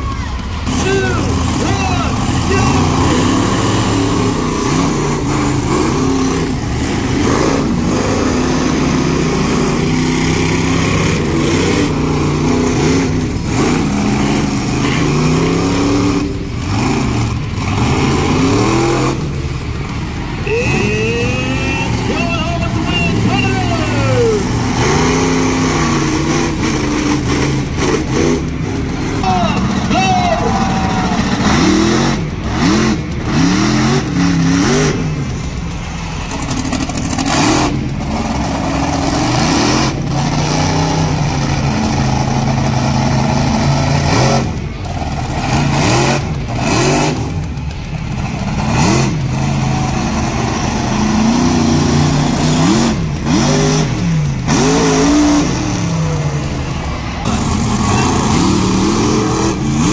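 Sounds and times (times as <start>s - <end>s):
truck engine revving: 0.0s - 59.9s.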